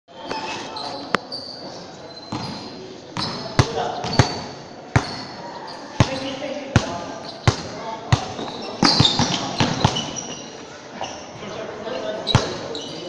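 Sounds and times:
basketball dribbling on court: 3.2s - 5.3s.

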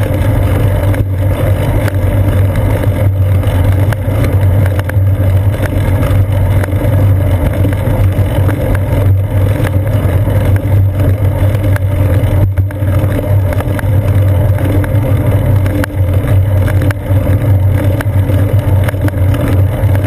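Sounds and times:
faint ticks from road bumps: 0.0s - 20.0s
wind and road noise rumble: 0.0s - 20.0s.

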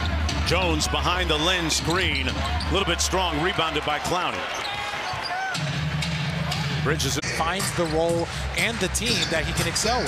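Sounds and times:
arena music with low bass: 0.0s - 4.1s, 5.6s - 10.0s
crowd noise: 0.0s - 10.0s.

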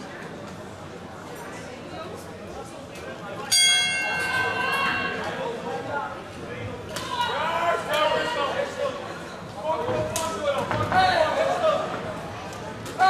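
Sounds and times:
round bell ringing: 3.5s - 5.2s.

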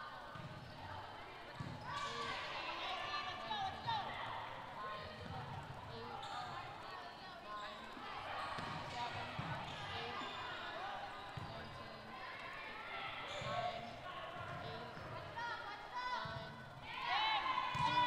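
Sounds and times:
sneaker squeaks: 6.1s - 6.7s, 7.6s - 11.9s.

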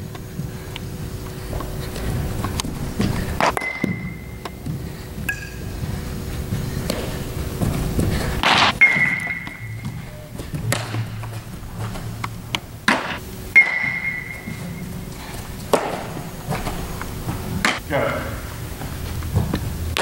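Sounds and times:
metal bat cracking balls: 1.5s - 5.8s, 6.8s - 17.9s, 19.4s - 20.0s
sharp knocks: 8.4s - 14.8s, 15.7s - 17.8s.

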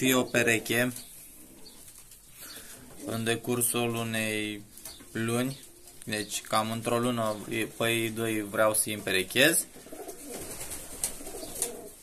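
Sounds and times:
pigeons cooing: 0.0s - 6.1s, 6.8s - 12.0s.

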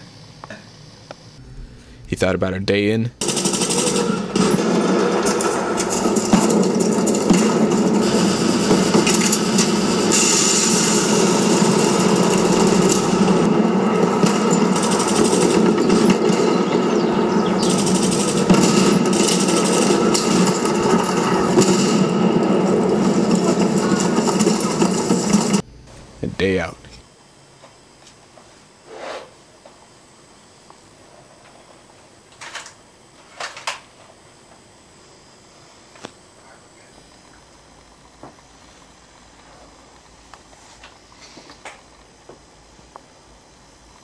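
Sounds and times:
rapid machine-gun fire: 3.2s - 25.6s.

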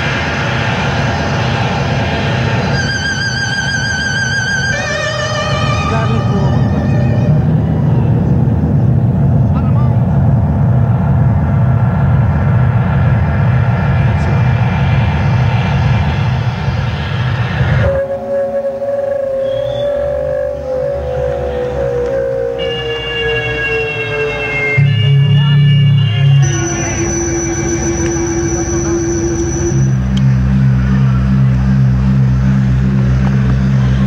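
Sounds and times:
jazz fusion synthesizer music: 2.6s - 9.6s, 17.8s - 34.0s.

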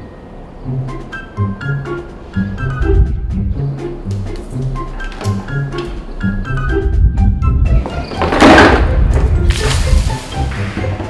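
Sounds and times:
background music: 0.0s - 11.0s
water splashing down: 9.5s - 10.7s.

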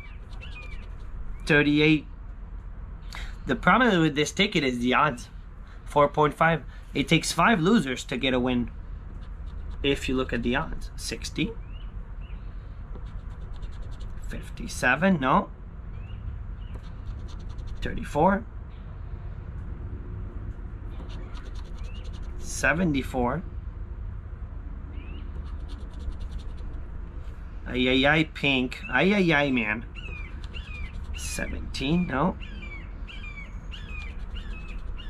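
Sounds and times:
coin scratching lottery ticket: 0.0s - 1.1s, 13.0s - 14.4s, 16.8s - 18.0s, 21.0s - 22.6s, 25.4s - 26.8s, 30.4s - 31.4s, 33.9s - 35.0s
bird chirping: 0.0s - 1.5s, 11.5s - 14.0s, 15.9s - 18.0s, 20.9s - 22.5s, 24.9s - 26.8s, 28.5s - 35.0s
low background rumble: 0.0s - 35.0s.

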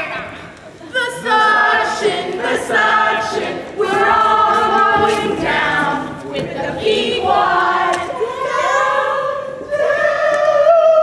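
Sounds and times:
group singing without instruments: 0.9s - 11.0s.

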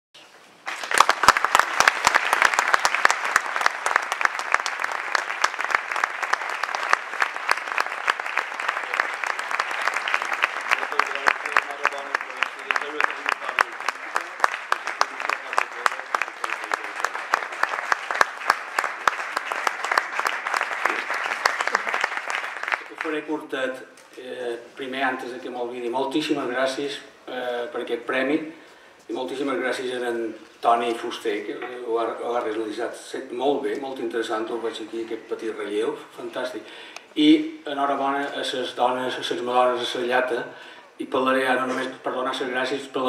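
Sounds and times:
audience applauding: 0.6s - 23.3s.

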